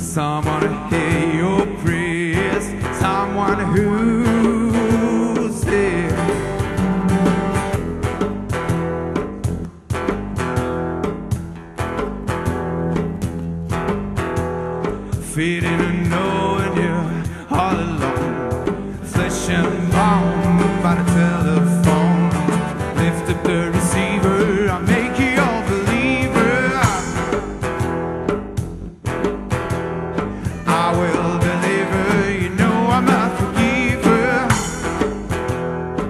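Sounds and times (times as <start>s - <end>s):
acoustic guitar strumming chords: 0.1s - 36.0s
wavering melody line: 6.3s - 8.2s.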